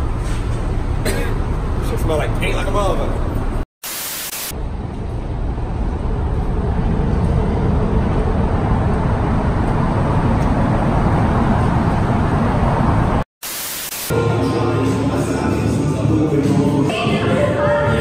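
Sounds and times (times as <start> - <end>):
static hiss: 3.8 - 4.5, 13.4 - 14.1.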